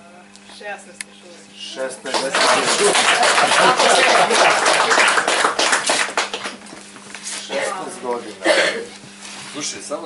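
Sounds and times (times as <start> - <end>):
audience applauding: 2.0 - 6.8.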